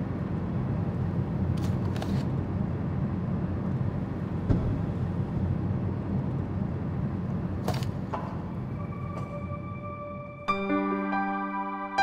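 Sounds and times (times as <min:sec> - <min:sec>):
low background rumble: 0:00.0 - 0:10.7.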